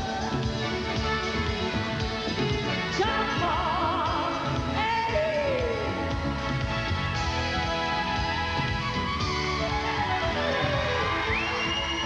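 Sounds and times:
live band playing pop-country: 0:00.0 - 0:12.0.

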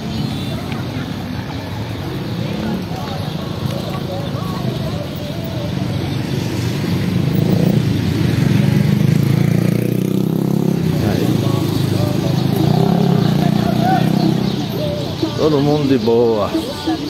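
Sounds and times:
faint voices: 0:00.0 - 0:07.7, 0:10.7 - 0:17.0.

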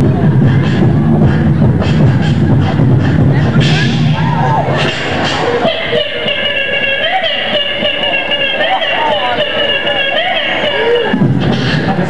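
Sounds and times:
beatboxing vocal melody: 0:00.0 - 0:12.0.

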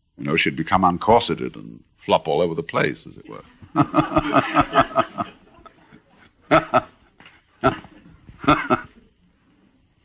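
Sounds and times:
person laughing: 0:03.8 - 0:05.4, 0:06.5 - 0:06.9, 0:07.6 - 0:08.9.

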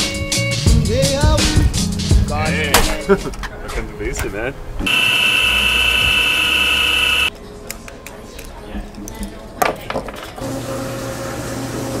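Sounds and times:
electric motors whining: 0:04.9 - 0:07.3
workshop clicks and knocks: 0:09.6 - 0:10.4.

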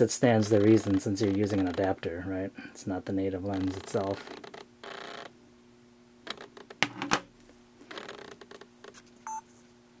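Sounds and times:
remote clicking and knocking on table: 0:06.8 - 0:07.3.

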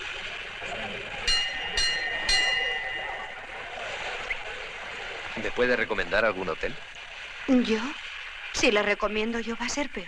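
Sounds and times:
station ambience hiss: 0:00.0 - 0:10.0
station bell ringing: 0:01.2 - 0:04.2.

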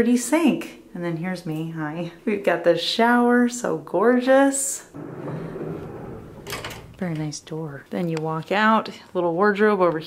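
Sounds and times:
sharp knocks: 0:05.0 - 0:07.2
sliding door on its track: 0:05.0 - 0:07.2.

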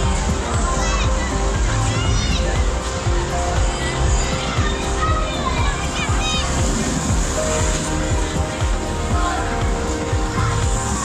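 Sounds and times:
children's voices: 0:00.0 - 0:11.0
music playing: 0:00.0 - 0:11.0
people talking: 0:00.0 - 0:11.0.

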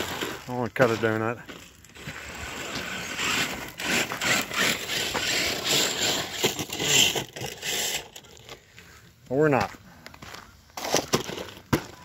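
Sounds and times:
toy truck tyres scrabbling on gravel: 0:00.0 - 0:12.0.

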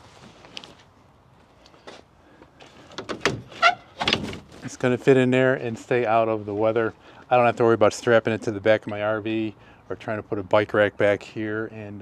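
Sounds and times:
cover sliding rattle: 0:02.8 - 0:04.7
truck bed cover clicks: 0:02.9 - 0:04.6.

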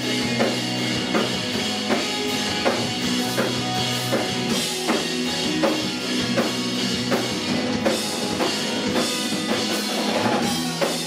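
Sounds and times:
drum kit beat: 0:00.0 - 0:11.0
electric guitars and bass: 0:00.0 - 0:11.0.

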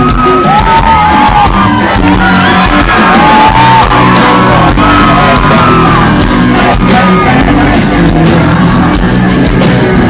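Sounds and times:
electric guitar bending notes: 0:00.0 - 0:09.6
rock band playing live: 0:00.0 - 0:10.0.

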